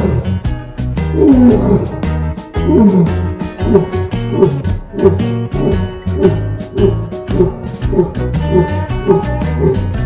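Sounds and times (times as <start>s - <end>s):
lion roaring: 0.0s - 0.4s, 1.0s - 10.0s
background music: 0.0s - 10.0s.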